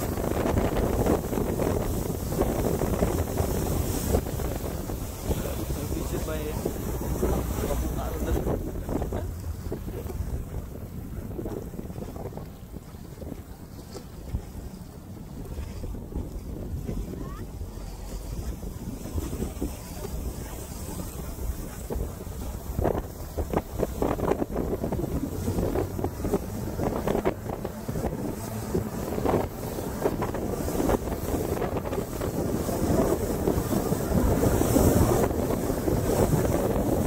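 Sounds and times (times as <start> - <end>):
boat wake rushing: 0.0 - 37.0
outboard motor running: 0.0 - 37.0
wind buffeting microphone: 0.0 - 37.0.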